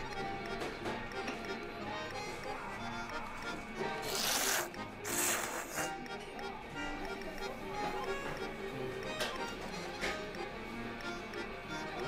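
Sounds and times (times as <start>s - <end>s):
background music: 0.0s - 12.0s
loud noodle slurps: 4.0s - 6.0s.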